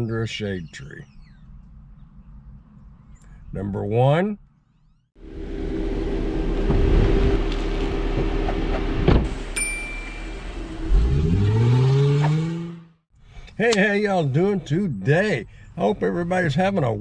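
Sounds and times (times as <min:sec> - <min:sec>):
car engine running and revving: 0:05.2 - 0:13.0
bright bell-like chime: 0:09.6 - 0:10.5.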